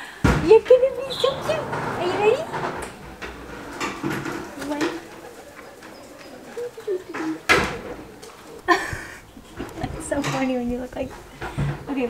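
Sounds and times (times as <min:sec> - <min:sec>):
pigeon cooing: 0:00.8 - 0:10.2.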